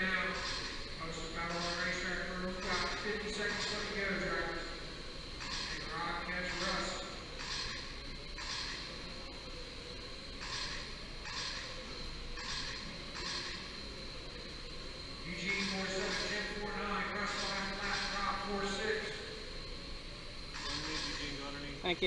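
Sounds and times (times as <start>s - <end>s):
steady high whine: 0.0s - 22.0s.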